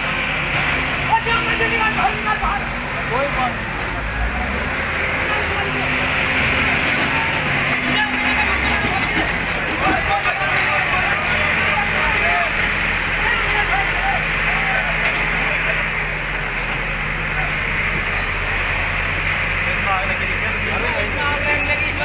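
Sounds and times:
diesel engines running: 0.0 - 22.0.

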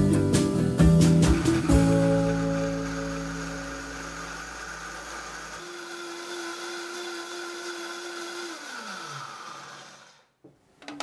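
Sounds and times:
blender motor whining: 1.2 - 10.4.

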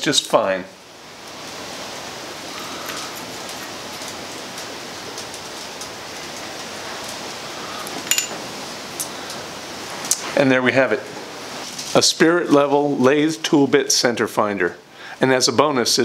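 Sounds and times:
sharp ringing click: 8.1 - 8.4.

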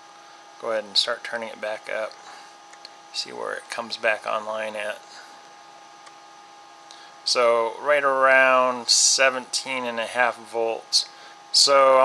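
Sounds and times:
faint background hum: 0.0 - 12.0
small click: 2.1 - 3.0.

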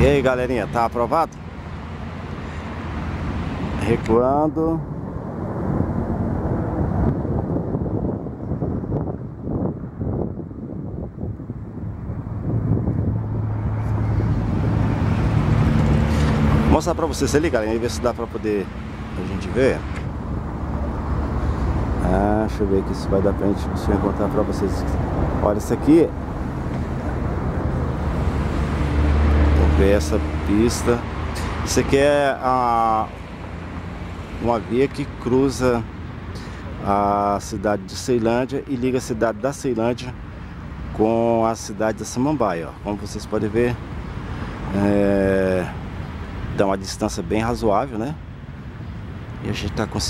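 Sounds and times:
low engine hum: 0.0 - 41.1
road traffic: 0.0 - 50.0
vehicle passing: 0.0 - 50.0
wind on microphone: 4.8 - 16.7.

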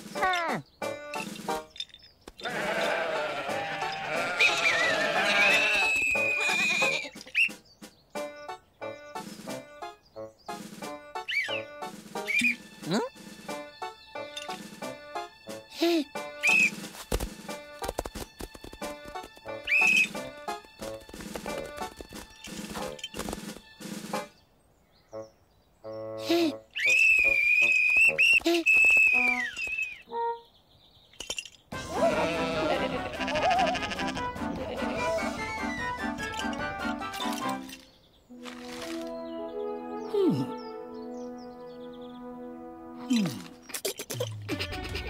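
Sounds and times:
cartoon background music: 0.0 - 1.8, 2.4 - 24.4, 25.2 - 28.3, 29.2 - 30.5, 31.8 - 45.0
shrill whistle blast: 5.5 - 7.6, 16.4 - 16.8, 26.8 - 30.0.

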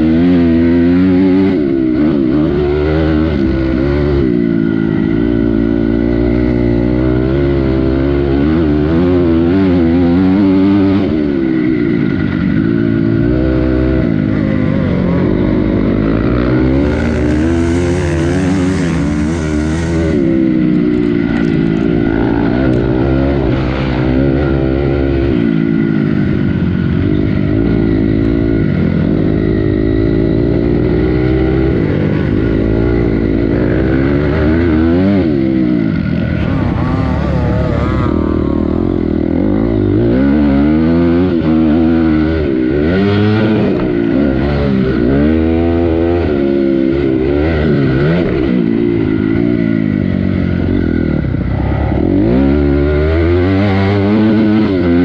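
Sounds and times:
motocross bike engine revving: 0.0 - 55.0.

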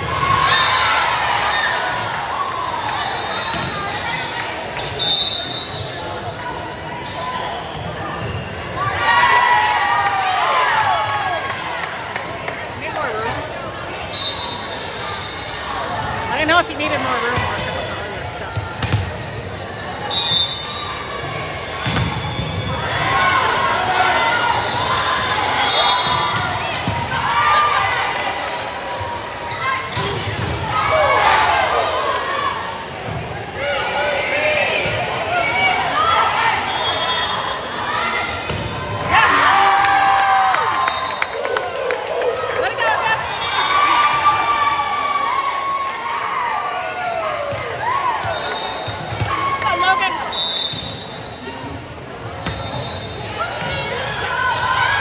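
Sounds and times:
crowd chatter: 0.0 - 55.0
referee's whistle blasts: 5.0 - 6.0, 14.1 - 15.6, 20.0 - 21.0, 25.6 - 26.5, 48.2 - 49.2, 50.2 - 51.4, 52.4 - 53.6.

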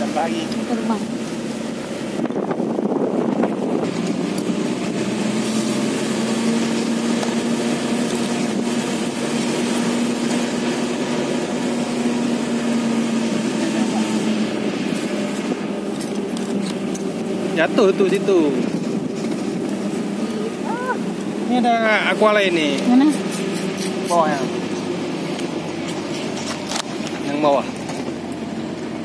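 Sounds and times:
road and wind noise: 0.0 - 29.0
truck engine hum: 0.0 - 29.0.

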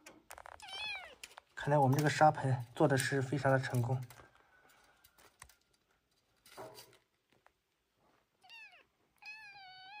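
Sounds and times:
kitten meowing: 0.6 - 1.2, 8.4 - 10.0.

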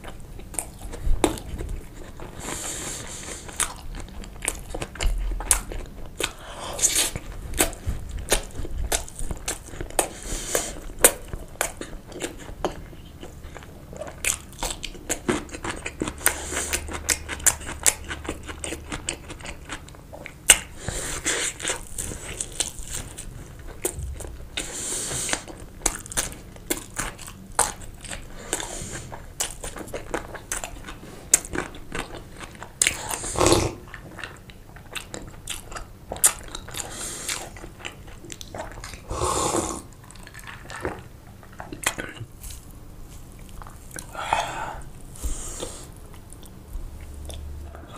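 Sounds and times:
chewing food: 0.0 - 47.9.

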